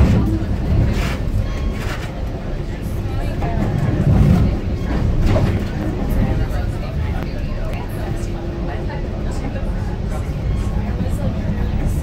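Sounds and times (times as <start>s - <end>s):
train rumbling in motion: 0.0s - 12.0s.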